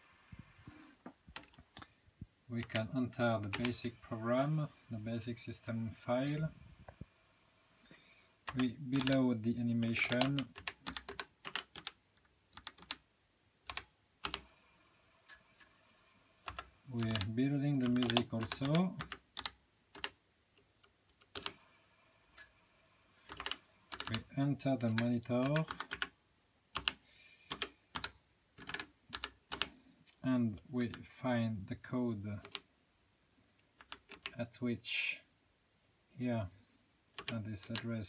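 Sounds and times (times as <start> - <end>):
keyboard typing clicks: 2.6 - 3.8, 8.5 - 9.2, 10.0 - 13.0, 13.7 - 14.4, 16.5 - 20.2, 21.1 - 21.6, 23.3 - 26.1, 26.8 - 29.7, 33.8 - 34.4, 37.2 - 37.8.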